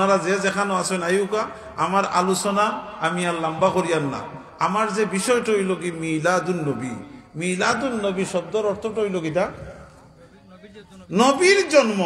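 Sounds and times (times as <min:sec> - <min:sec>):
man speaking into a microphone: 0:00.0 - 0:12.0.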